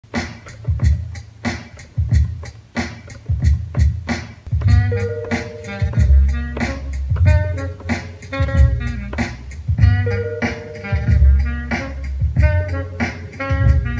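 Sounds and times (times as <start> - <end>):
hip-hop drum break: 0.0 - 13.9
bass line: 3.4 - 13.9
sampled saxophone: 4.5 - 13.9.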